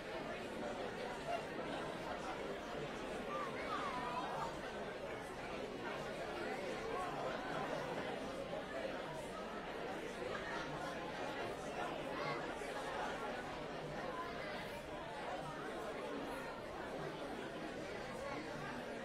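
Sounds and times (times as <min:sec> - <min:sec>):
crowd chatting: 0:00.0 - 0:19.0.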